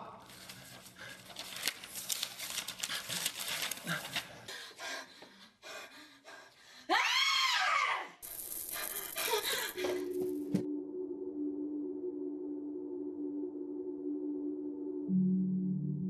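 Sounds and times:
crackling rustling noise with clicks: 0.2s - 4.5s
loud cry: 6.9s - 8.2s.

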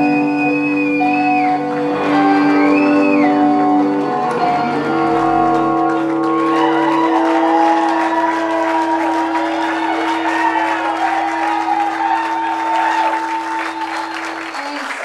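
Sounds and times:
audience applause: 0.0s - 15.0s.

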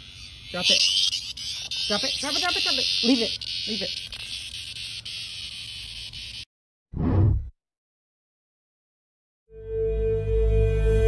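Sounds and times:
high-pitched insect buzzing: 0.0s - 6.5s.

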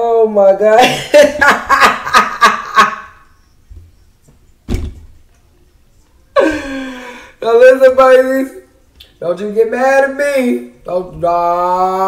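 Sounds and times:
woman laughing: 0.8s - 3.2s, 6.4s - 7.3s
sharp thump: 4.7s - 5.2s.

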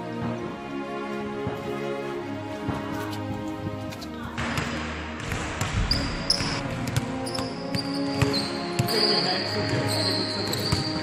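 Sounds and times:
background music: 0.0s - 11.0s
basketball bouncing on hardwood floor: 4.5s - 8.9s
sneaker squeaks: 5.8s - 11.0s.

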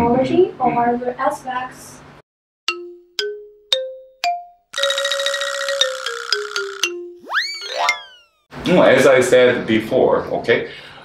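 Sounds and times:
bell-like notes rising: 4.8s - 8.4s
busy music passage: 4.8s - 8.4s.

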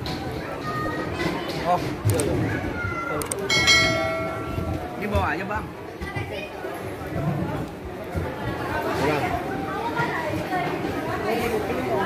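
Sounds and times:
metal tray clinking and ringing: 3.5s - 4.9s.

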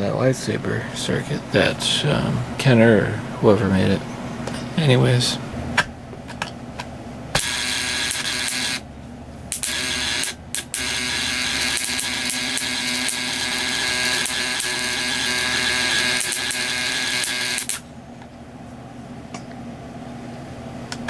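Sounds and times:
sparks crackling across spark gap: 7.4s - 8.8s, 9.5s - 17.8s.

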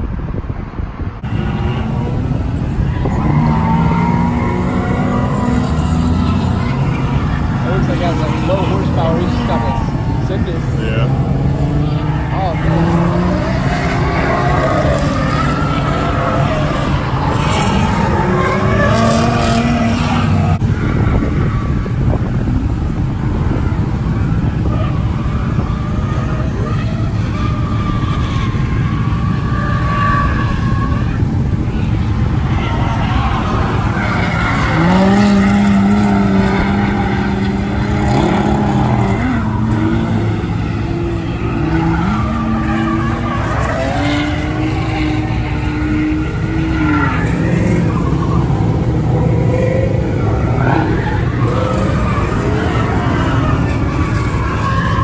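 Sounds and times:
car engines at high revs: 0.0s - 55.0s
tyre squeal and skidding: 1.3s - 22.2s, 23.2s - 55.0s.

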